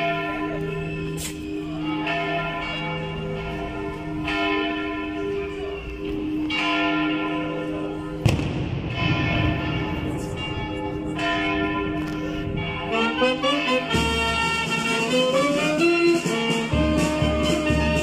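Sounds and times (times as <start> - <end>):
church bells ringing: 0.0 - 18.0
sharp bang: 8.2 - 10.6.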